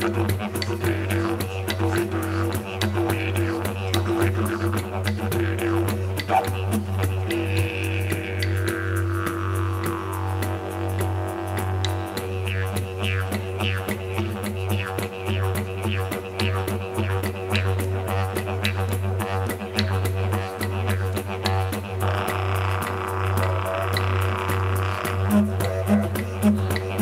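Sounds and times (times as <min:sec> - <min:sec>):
didgeridoo drone: 0:00.0 - 0:27.0.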